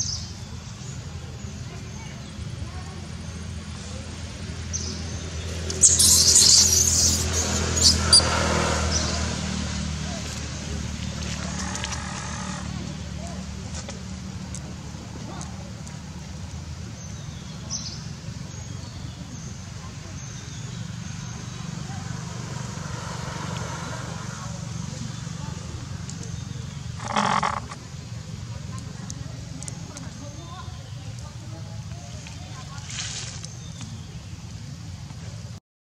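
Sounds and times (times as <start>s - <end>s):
macaque high cry: 5.8s - 8.3s
short sharp squeaks: 5.8s - 8.3s
baby monkey screaming: 5.8s - 8.4s.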